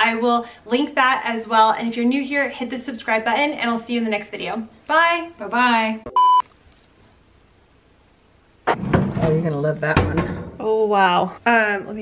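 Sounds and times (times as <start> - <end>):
electronic test-tone beep: 6.1 - 6.4.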